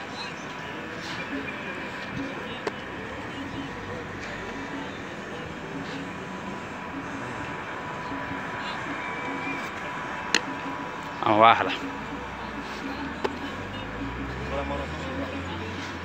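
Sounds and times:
faint distant voices: 0.0s - 16.0s
outdoor background noise: 0.0s - 16.0s.

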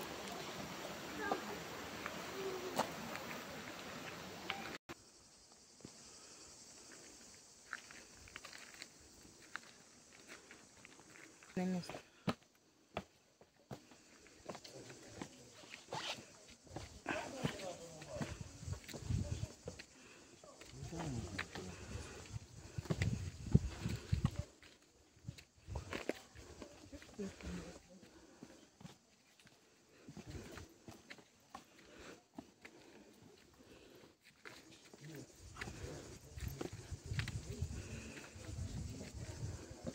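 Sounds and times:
footsteps on stone steps: 0.0s - 4.8s, 6.8s - 39.9s.

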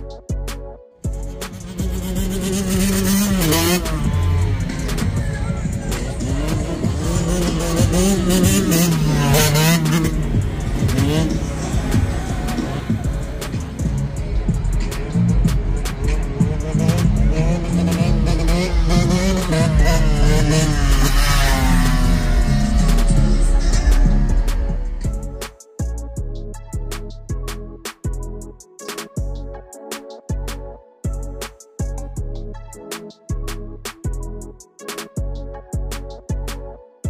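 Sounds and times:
vehicle engine at steady revs: 1.5s - 25.4s.

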